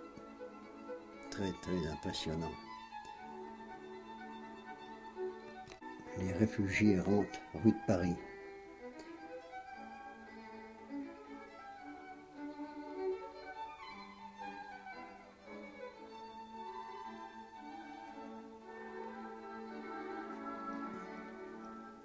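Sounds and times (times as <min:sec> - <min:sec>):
held lower string notes: 0:00.0 - 0:22.0
slow violin melody: 0:00.0 - 0:22.0.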